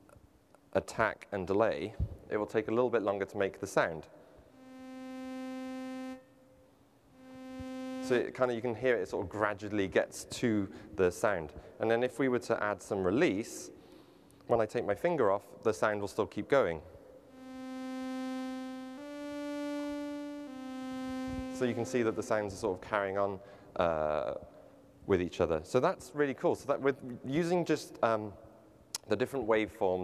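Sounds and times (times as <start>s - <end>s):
buzzy synthesizer note: 4.5s - 9.4s, 17.2s - 23.4s.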